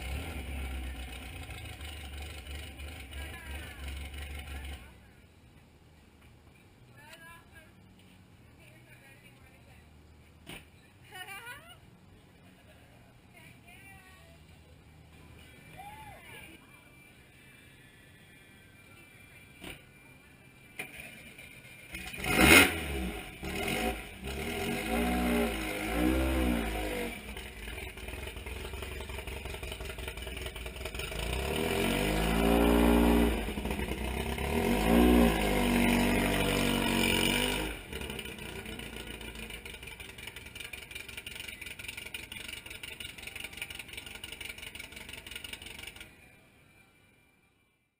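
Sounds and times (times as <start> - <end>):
car engine revving: 0.0 - 4.9, 21.9 - 46.0.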